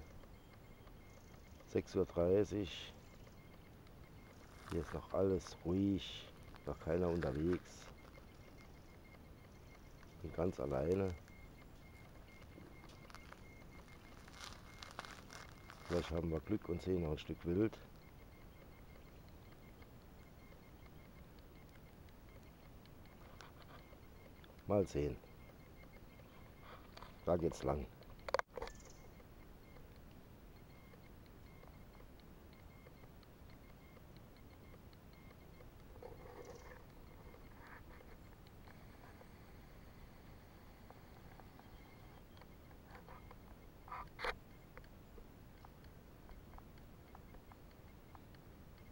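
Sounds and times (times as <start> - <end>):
faint clicks and rustles: 0.0 - 48.9
faint steady forest hiss: 0.0 - 48.9.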